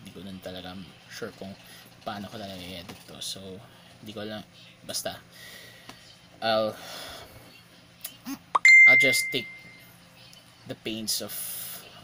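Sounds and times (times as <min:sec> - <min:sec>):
bright bell-like ding: 0:08.6 - 0:09.8.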